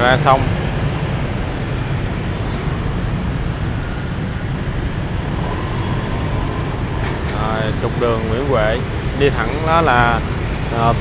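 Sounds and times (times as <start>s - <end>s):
dense traffic rumble: 0.0s - 11.0s.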